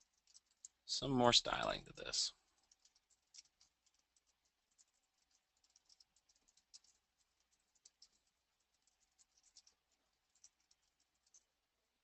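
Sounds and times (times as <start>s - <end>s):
faint keyboard typing: 0.0s - 12.0s.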